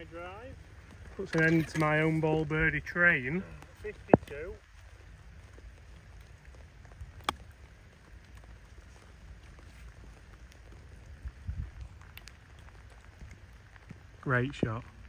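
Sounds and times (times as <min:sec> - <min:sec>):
faint rain: 0:00.0 - 0:15.0.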